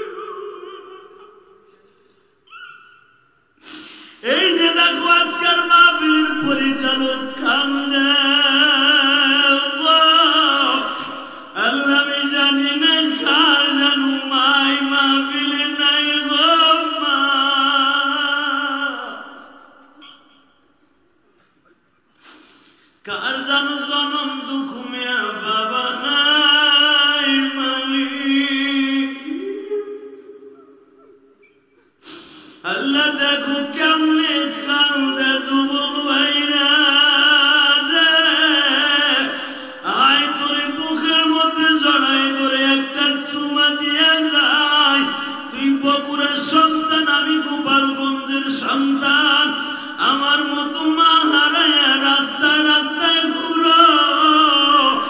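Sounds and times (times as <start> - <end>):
man chanting into a microphone: 4.1 - 20.0, 23.0 - 30.2, 32.3 - 55.0
brief hiss: 22.2 - 22.9.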